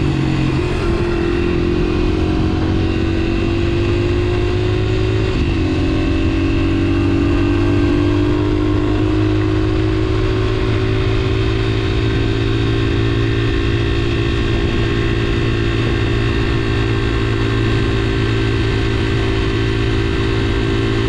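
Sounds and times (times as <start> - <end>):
small motorcycle engine at high revs: 0.0 - 21.0.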